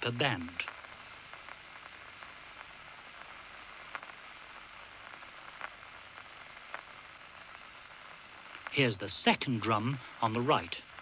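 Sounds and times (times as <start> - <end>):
film soundtrack hiss: 0.0 - 11.0
faint clicks: 0.6 - 8.9.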